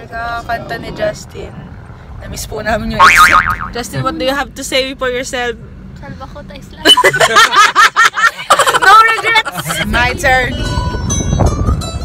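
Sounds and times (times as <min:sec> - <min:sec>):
car road rumble: 0:00.0 - 0:12.0.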